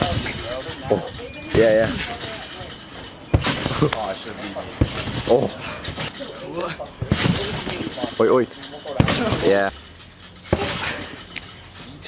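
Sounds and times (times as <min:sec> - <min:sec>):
trampoline mat thump: 0:00.0 - 0:00.5, 0:01.5 - 0:02.4, 0:03.3 - 0:06.1, 0:07.0 - 0:08.1, 0:08.9 - 0:09.8, 0:10.4 - 0:11.1
trampoline springs rattling: 0:00.0 - 0:12.0.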